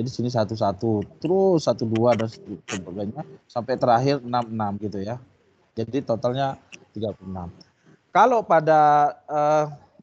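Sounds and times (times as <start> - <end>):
man counting aloud: 0.0 - 5.2.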